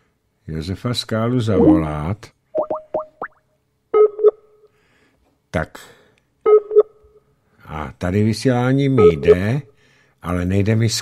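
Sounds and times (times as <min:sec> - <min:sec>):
short rising blips: 0:01.5 - 0:01.9.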